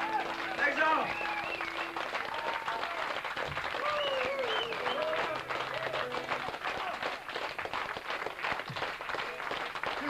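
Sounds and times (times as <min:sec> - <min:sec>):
audience applauding: 0:00.0 - 0:10.0.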